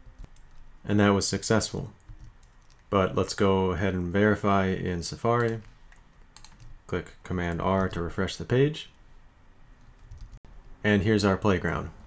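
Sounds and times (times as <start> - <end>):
low steady background hiss: 0.0 - 12.0
person speaking: 0.6 - 6.0, 6.8 - 9.0, 10.8 - 12.0.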